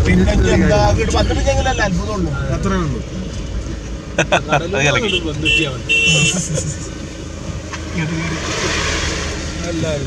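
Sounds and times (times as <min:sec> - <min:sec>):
people talking: 0:00.0 - 0:03.1, 0:04.2 - 0:06.9
vehicle engine and road rumble: 0:00.0 - 0:10.0.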